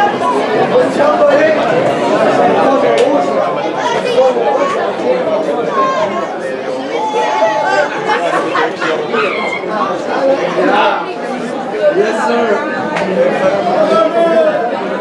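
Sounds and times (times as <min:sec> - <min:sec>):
overlapping chatter of voices: 0:00.0 - 0:15.0.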